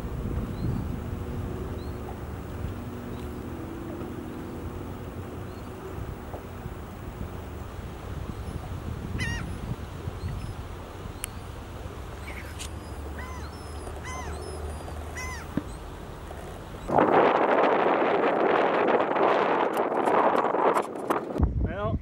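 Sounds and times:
loud steady rushing noise: 0:00.0 - 0:07.7
low rumble: 0:00.0 - 0:07.8
birds chirping: 0:00.2 - 0:07.4, 0:08.3 - 0:16.9.

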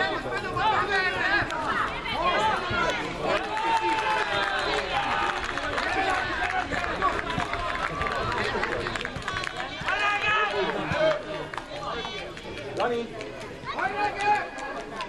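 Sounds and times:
people shouting and calling out: 0:00.0 - 0:15.0.

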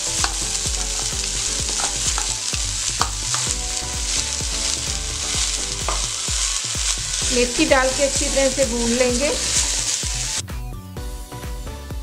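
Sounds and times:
leaves sizzling in a pan: 0:00.0 - 0:10.5.

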